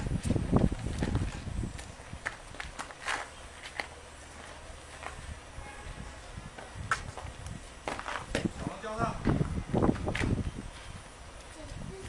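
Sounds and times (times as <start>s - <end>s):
light taps and scuffs: 0.2s - 5.4s, 6.6s - 8.6s.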